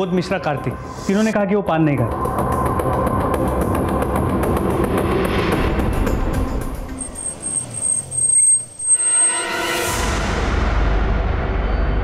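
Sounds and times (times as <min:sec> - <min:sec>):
high thin tone: 0:01.1 - 0:01.4.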